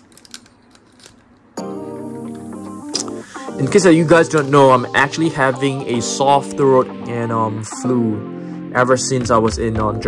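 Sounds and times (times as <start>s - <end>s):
sustained musical chord: 1.6s - 8.9s.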